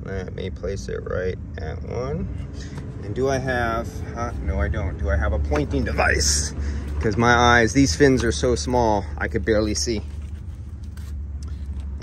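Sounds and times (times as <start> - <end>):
engine humming: 0.0 - 12.0.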